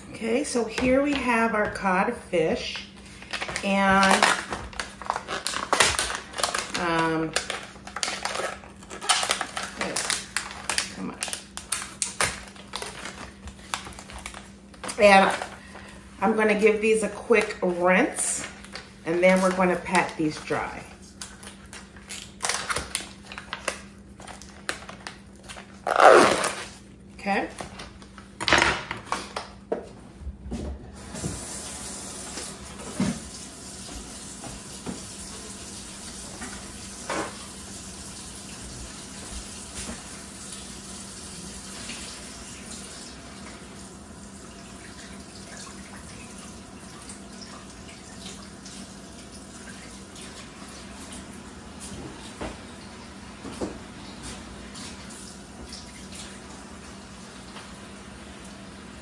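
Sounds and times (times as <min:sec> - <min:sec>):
plastic packaging rustling: 0:03.0 - 0:16.0, 0:18.4 - 0:26.9.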